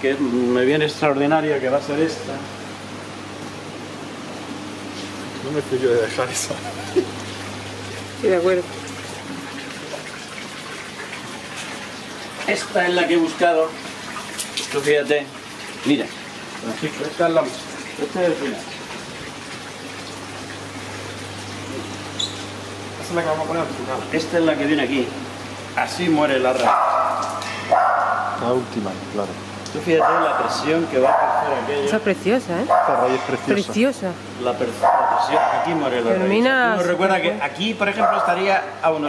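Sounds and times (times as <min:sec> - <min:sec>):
aquarium pumps and filters running: 0:00.0 - 0:39.0.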